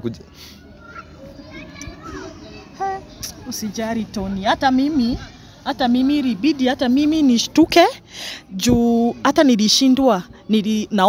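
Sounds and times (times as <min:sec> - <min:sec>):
children's voices: 0:00.4 - 0:11.0.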